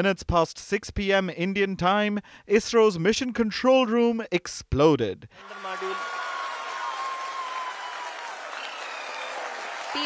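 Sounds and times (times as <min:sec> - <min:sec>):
crowd applauding and cheering: 0:05.4 - 0:10.0.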